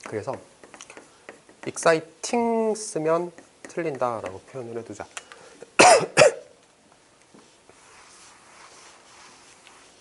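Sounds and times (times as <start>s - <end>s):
man coughing: 5.8s - 6.5s.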